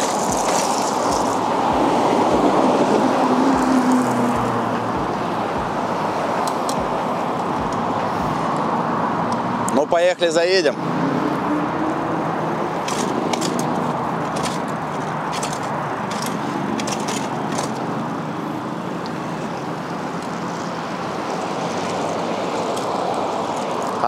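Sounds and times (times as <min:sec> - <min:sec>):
city traffic noise: 0:00.0 - 0:24.0.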